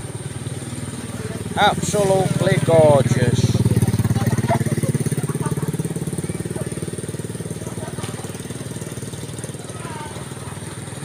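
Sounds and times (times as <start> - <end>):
small engine chugging: 0.0 - 11.0.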